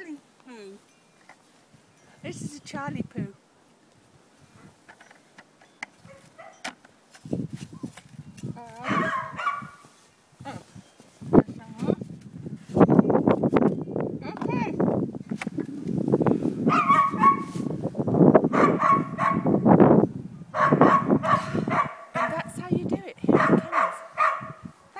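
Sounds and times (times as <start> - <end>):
dogs barking: 6.0 - 6.6, 8.8 - 9.8, 16.7 - 17.5, 18.5 - 19.6, 20.6 - 22.5, 23.3 - 24.6.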